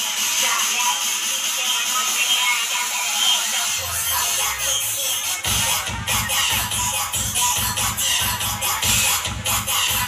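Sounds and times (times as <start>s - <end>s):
heavy steady beat: 0.0s - 10.0s.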